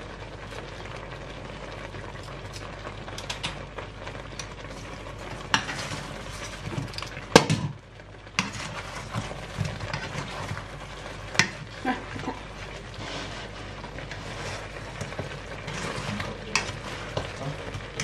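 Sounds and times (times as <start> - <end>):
food sizzling in a frying pan: 0.0 - 18.0
spatula scraping a pan: 5.4 - 7.0, 8.4 - 18.0.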